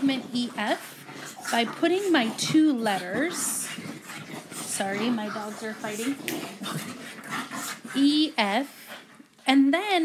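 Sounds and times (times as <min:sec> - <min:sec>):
dogs fighting: 0:00.0 - 0:09.5.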